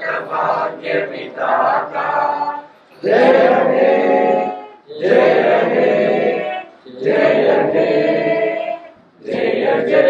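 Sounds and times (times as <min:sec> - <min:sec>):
group of people singing in unison: 0:00.0 - 0:10.0.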